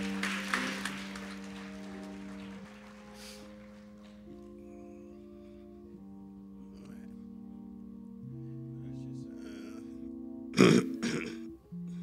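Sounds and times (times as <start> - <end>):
soft keyboard chords: 0.0 - 12.0
throaty vocal noises: 10.6 - 11.5.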